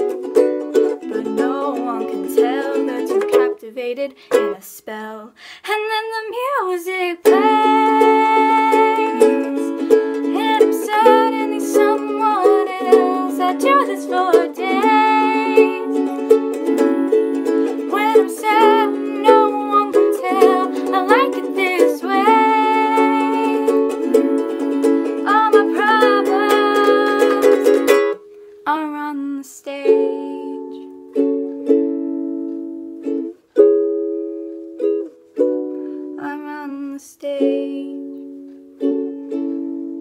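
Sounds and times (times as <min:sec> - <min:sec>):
ukulele strumming: 0:00.0 - 0:04.7, 0:06.3 - 0:40.0
person singing: 0:00.0 - 0:31.5, 0:35.4 - 0:38.3.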